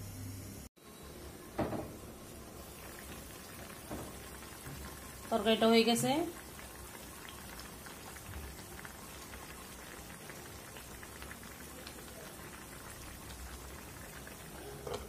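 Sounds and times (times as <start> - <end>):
curry bubbling in a pot: 0.8 - 15.0.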